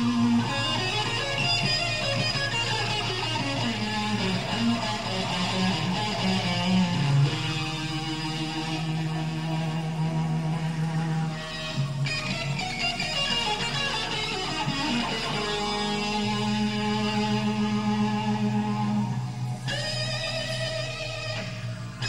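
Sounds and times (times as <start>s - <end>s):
electric guitar solo: 0.0s - 22.0s.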